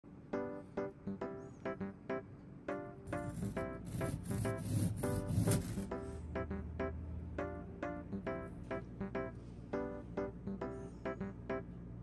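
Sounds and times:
bread knife sawing through cookie: 3.1s - 6.0s.

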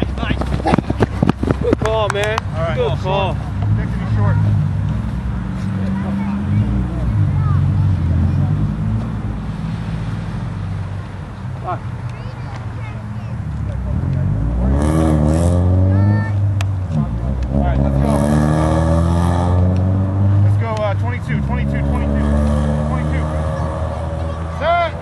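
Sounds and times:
players calling out: 20.1s - 25.0s.

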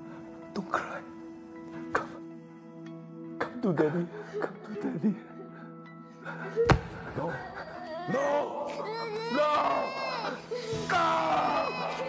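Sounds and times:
man crying out and sobbing: 7.2s - 12.0s.

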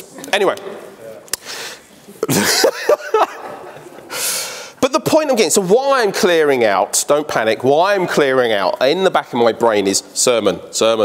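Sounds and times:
man laughing: 2.2s - 4.2s.

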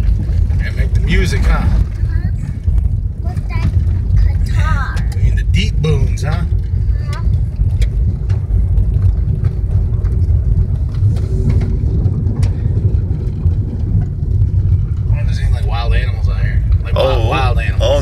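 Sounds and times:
car driving on gravel: 0.0s - 18.0s.

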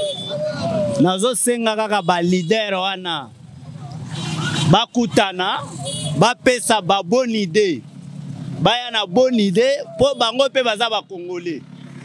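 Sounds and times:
man shouting: 0.0s - 3.2s, 4.9s - 7.8s, 8.7s - 11.6s
motor vehicle passing: 3.2s - 12.0s.

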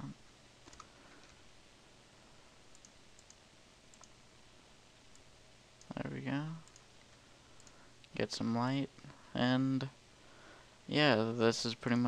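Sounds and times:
low steady hum: 0.0s - 12.0s
computer mouse clicks: 0.6s - 1.4s, 2.7s - 4.2s, 6.6s - 8.2s.

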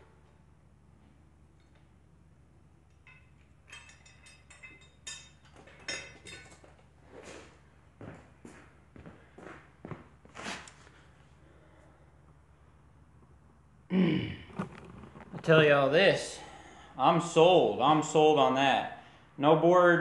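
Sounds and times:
metal tools clinking on concrete: 2.9s - 6.9s.

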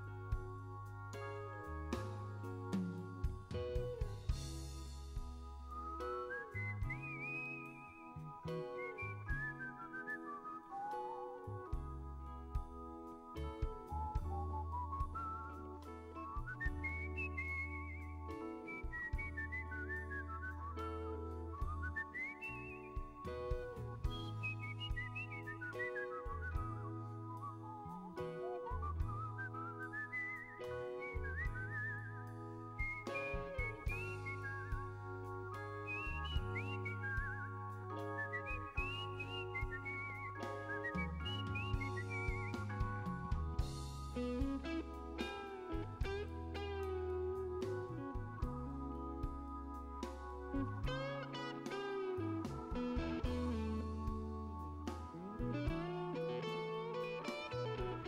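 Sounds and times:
bass line: 0.0s - 58.0s
organ chords: 0.0s - 58.0s
whistled melody with vibrato: 0.0s - 58.0s.

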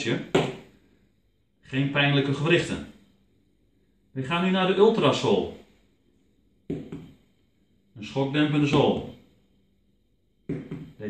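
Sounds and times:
ball knocking on insole: 0.3s - 0.7s, 6.7s - 7.2s, 10.5s - 11.0s.

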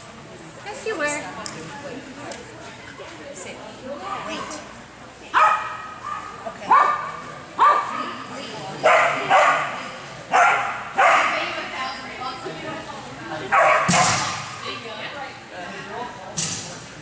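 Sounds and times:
dog barking in echoing hall: 5.3s - 8.2s, 8.8s - 11.6s, 13.5s - 14.4s.

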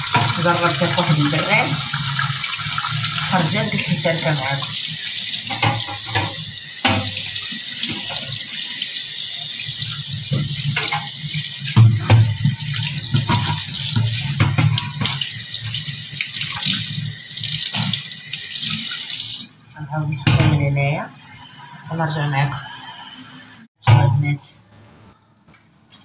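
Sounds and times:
tap water splashing on metal tray: 0.0s - 8.4s, 10.2s - 19.5s.

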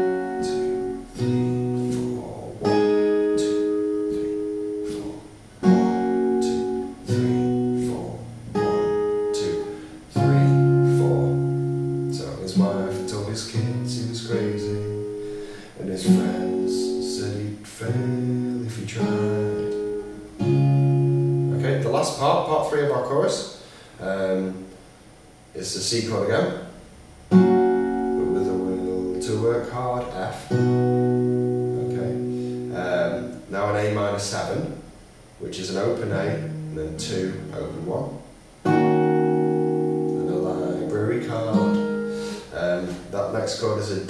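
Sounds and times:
acoustic guitar strumming chords: 0.0s - 44.0s.

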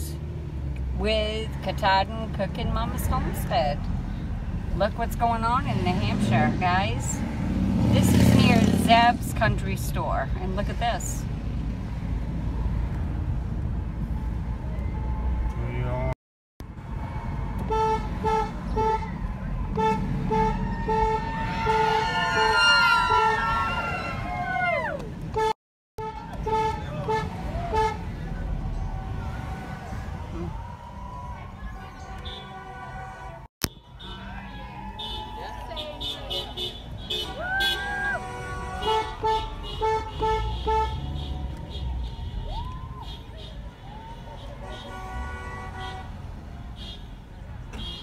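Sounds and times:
voices cheering and whooping: 20.6s - 25.2s, 28.7s - 33.1s, 34.1s - 36.1s, 37.3s - 38.3s, 41.4s - 44.6s
car rumble from inside: 26.1s - 33.4s
car horn short toots: 35.8s - 42.2s, 47.7s - 48.0s.

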